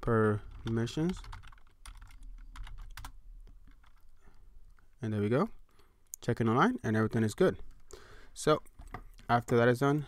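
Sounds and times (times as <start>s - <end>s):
computer keyboard typing: 0.2s - 4.1s.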